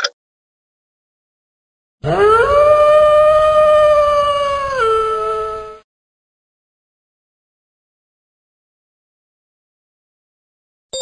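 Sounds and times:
wolf howling: 2.0 - 5.8.

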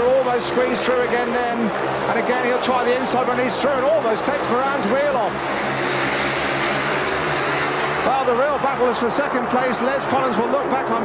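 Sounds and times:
motorcycles racing: 0.0 - 11.0.

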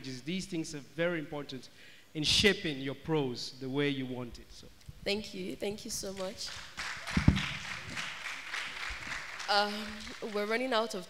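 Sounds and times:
audience applauding: 6.2 - 10.8
low thumps: 7.1 - 8.0.

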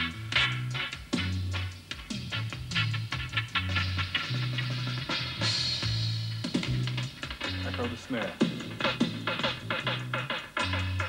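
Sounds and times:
deep bass line: 0.0 - 8.0
drum kit hits: 0.0 - 11.0.

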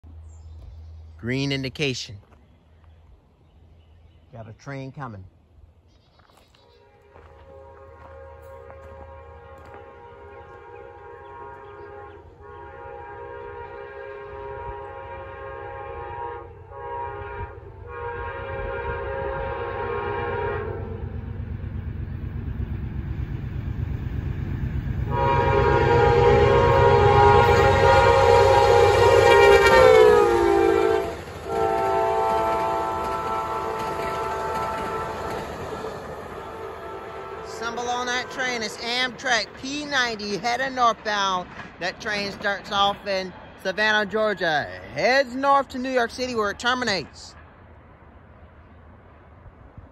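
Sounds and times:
locomotive horn blasts: 6.7 - 21.2, 25.1 - 35.6, 36.3 - 39.2
passenger cars rolling by: 20.3 - 49.9
diesel engine rumble: 21.0 - 29.2.

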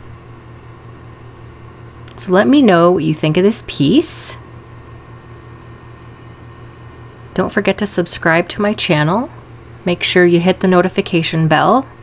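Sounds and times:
low hum with faint hiss: 0.0 - 12.0.

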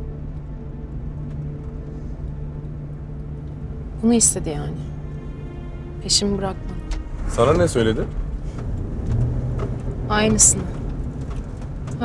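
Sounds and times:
car engine and road rumble: 0.0 - 12.0.

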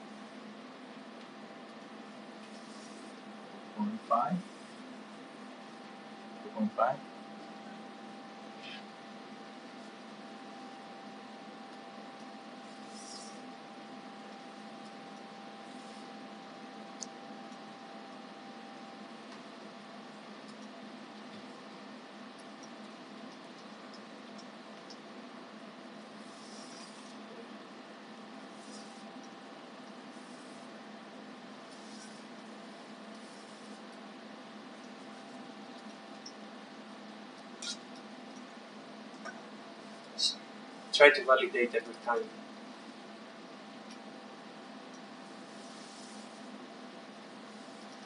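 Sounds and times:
cooling fans whirring: 0.0 - 48.0
high-pitched whine: 2.4 - 4.8, 5.5 - 19.1.

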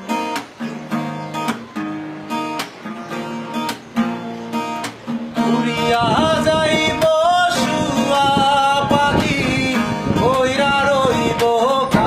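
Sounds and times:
acoustic guitar strumming: 0.0 - 12.0
man singing: 5.3 - 12.0.

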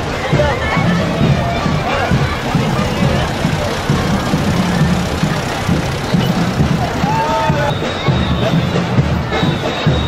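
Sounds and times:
tractor engine running: 0.0 - 8.2
crowd chatter: 0.0 - 10.0
music: 0.0 - 10.0.

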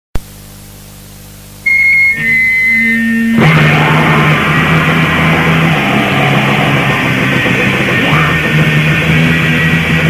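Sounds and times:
low hum with hiss: 0.2 - 10.0
steady high-pitched tone: 1.6 - 8.3.

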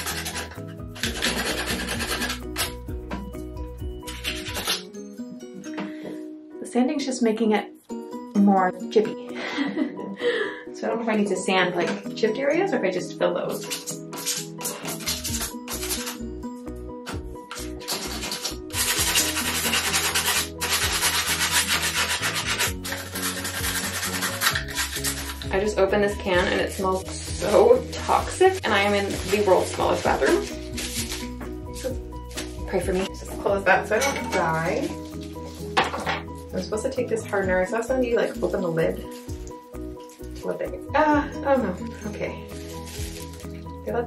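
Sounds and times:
sandpaper rubbing on bathtub: 0.0 - 2.8, 4.0 - 4.8, 13.6 - 16.2, 17.5 - 33.1, 42.0 - 43.6
background music: 0.0 - 44.0.

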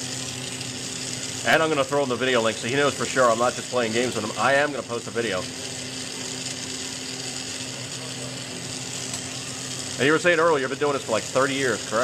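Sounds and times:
torch flame hissing: 0.0 - 12.0.

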